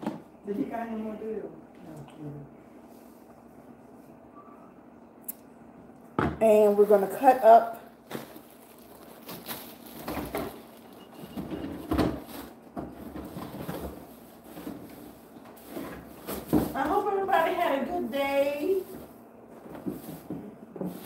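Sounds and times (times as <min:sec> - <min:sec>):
woman talking: 0:00.4 - 0:02.6, 0:06.4 - 0:07.9, 0:16.7 - 0:19.0
kitchen items and cupboards knocking: 0:06.2 - 0:06.5, 0:11.2 - 0:14.9.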